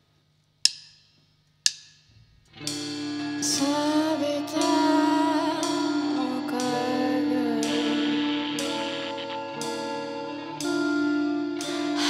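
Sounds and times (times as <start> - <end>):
drumstick count-in clicks: 0.6 - 2.0, 3.4 - 5.0, 5.6 - 10.8.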